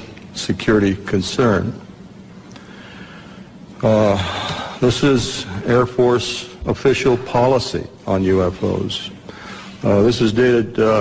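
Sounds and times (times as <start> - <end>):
man speaking into a microphone: 0.0 - 1.9, 3.8 - 11.0.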